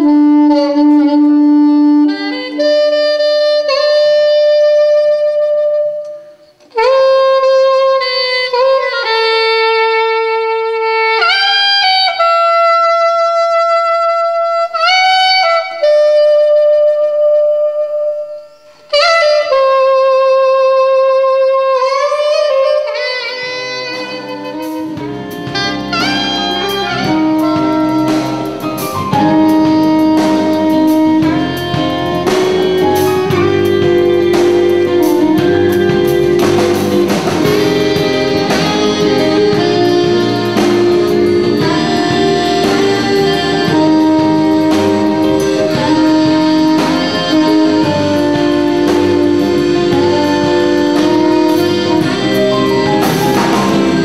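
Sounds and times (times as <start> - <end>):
soprano saxophone melody: 0.0 - 54.0
band with bass drums and accordion: 23.5 - 54.0.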